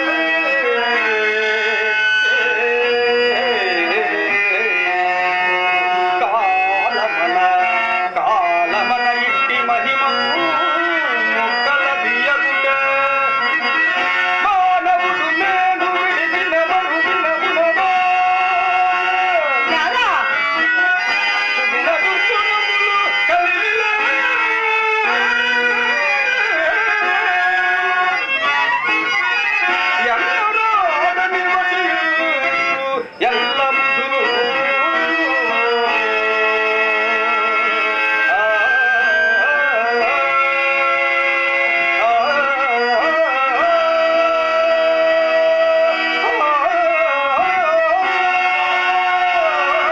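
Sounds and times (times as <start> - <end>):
harmonium sustained notes: 0.0 - 49.9
man singing: 0.0 - 49.9.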